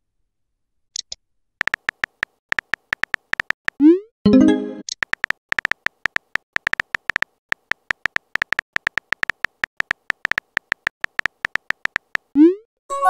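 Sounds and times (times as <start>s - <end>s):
phone keyboard clicks: 1.0s - 3.8s, 4.9s - 12.3s.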